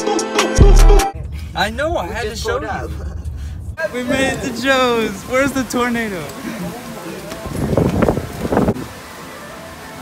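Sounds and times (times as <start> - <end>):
wind buffeting microphone: 7.3 - 9.0.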